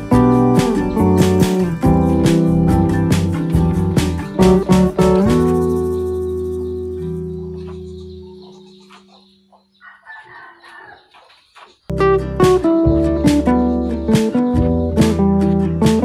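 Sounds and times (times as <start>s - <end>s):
acoustic guitar strumming: 0.0s - 9.3s, 11.9s - 16.0s
chickens clucking: 3.6s - 11.9s
rooster crowing: 7.4s - 11.3s.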